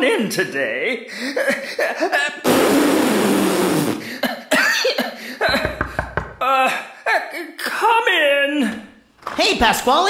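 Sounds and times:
knocking at a door: 0:05.5 - 0:06.4.

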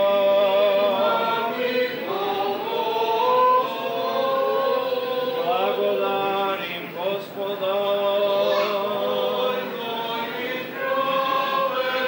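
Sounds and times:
choir singing liturgical chant: 0:00.0 - 0:12.0.

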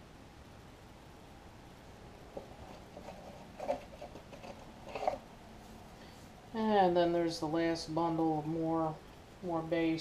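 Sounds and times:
cardboard sheets scraping: 0:02.6 - 0:06.2.

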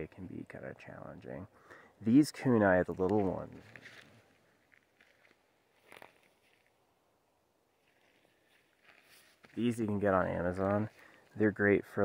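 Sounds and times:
faint rustle: 0:02.9 - 0:06.8, 0:07.7 - 0:10.0.

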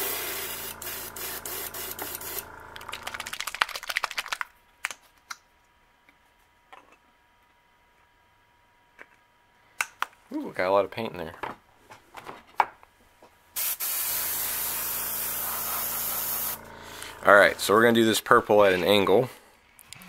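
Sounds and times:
airbrush blowing air: 0:00.0 - 0:02.5, 0:13.6 - 0:17.6
compressor humming: 0:00.0 - 0:03.6, 0:13.6 - 0:19.5.

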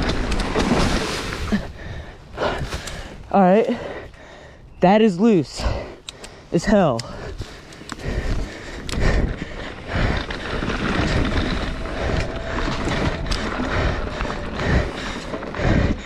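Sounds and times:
bike rattling over bumps: 0:00.0 - 0:04.5, 0:07.2 - 0:16.0
bike tyres sliding over loose soil: 0:07.4 - 0:16.0.

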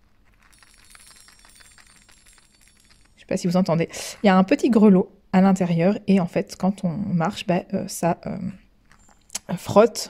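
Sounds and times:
small bell tinkling: 0:00.2 - 0:04.2, 0:08.9 - 0:09.3.

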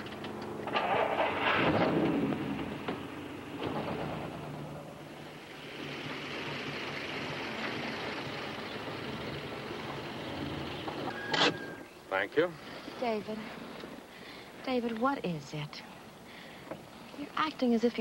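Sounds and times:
car engine driving off: 0:00.6 - 0:11.1.

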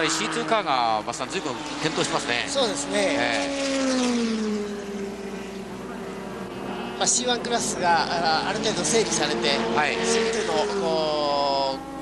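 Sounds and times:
race car engine running: 0:00.0 - 0:12.0.

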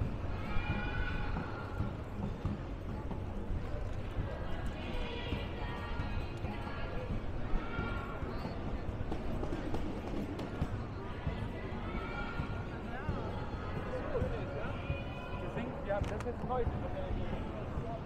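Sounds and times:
passers-by talking: 0:00.0 - 0:18.0.

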